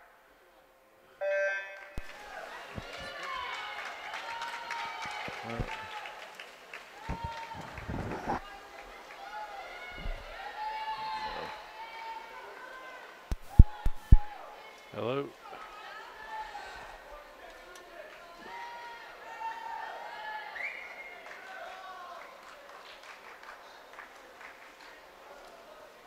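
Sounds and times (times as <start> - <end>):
electronic start beep: 1.2 - 2.0
spectators cheering and yelling: 1.2 - 14.9
sharp knocks: 13.3 - 14.4.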